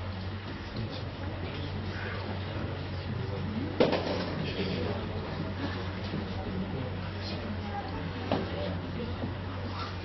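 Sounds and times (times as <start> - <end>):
steady hum: 0.0 - 10.0.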